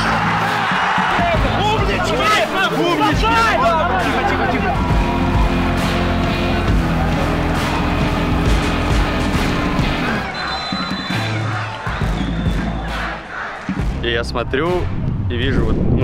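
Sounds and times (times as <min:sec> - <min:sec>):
crowd cheering and shouting: 0:00.0 - 0:14.0
background music: 0:00.0 - 0:16.0.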